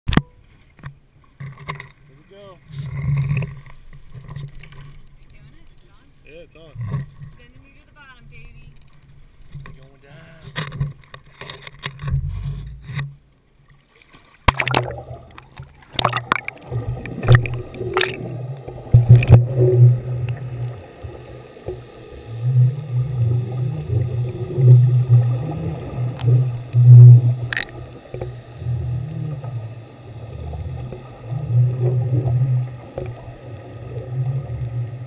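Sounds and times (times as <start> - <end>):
camera hitting water: 14.4 - 21.8, 23.9 - 28.4
muffled underwater rushing: 14.4 - 35.0
knocks underwater: 14.5 - 34.9.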